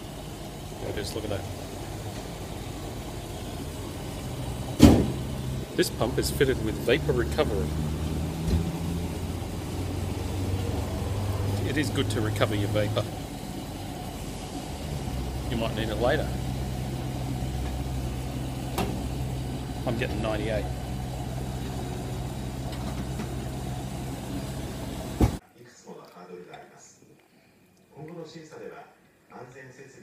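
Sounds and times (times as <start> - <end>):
fuel pump humming: 0.0 - 25.4
loud thump: 4.8 - 5.2.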